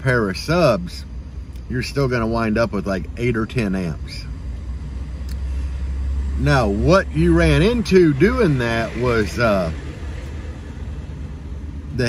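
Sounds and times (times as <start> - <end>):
vehicle cabin rumble: 0.0 - 12.0.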